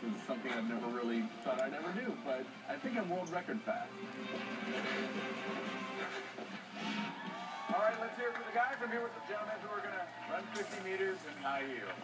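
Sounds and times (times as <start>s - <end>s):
television background music: 0.0s - 12.0s.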